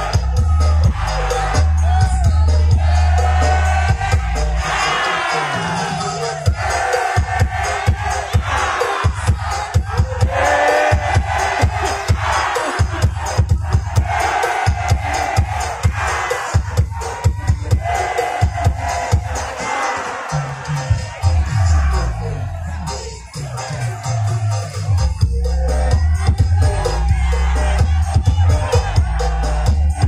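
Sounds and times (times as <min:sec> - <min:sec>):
fast drumbeat: 0:00.0 - 0:22.2, 0:24.4 - 0:30.0
crowd chanting and singing: 0:00.0 - 0:30.0.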